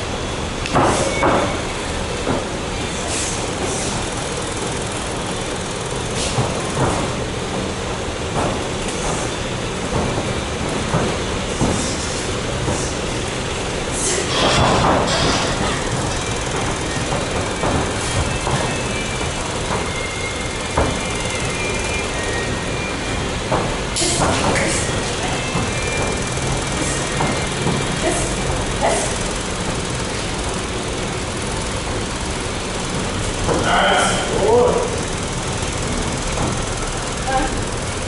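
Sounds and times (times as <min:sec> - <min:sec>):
rushing background noise: 0:00.0 - 0:38.0.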